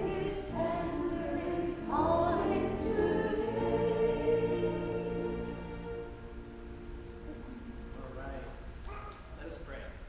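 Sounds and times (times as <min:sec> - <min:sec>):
held singing notes: 0:00.0 - 0:08.7.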